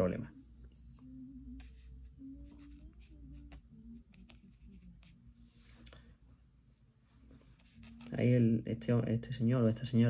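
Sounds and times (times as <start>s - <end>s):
low steady hum: 0.0s - 10.0s
paintbrush scratching on paper: 1.6s - 5.7s, 7.4s - 8.4s.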